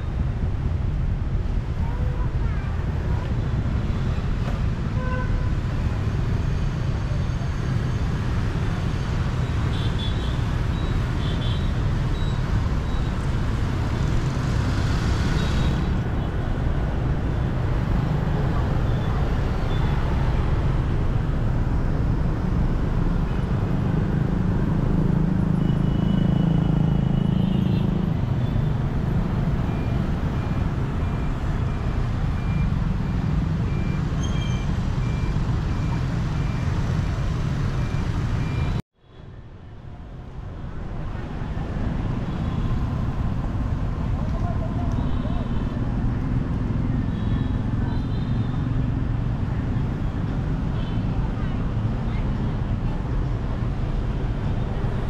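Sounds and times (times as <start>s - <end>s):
motorbikes: 0.0s - 55.0s
street traffic rumble: 0.0s - 55.0s.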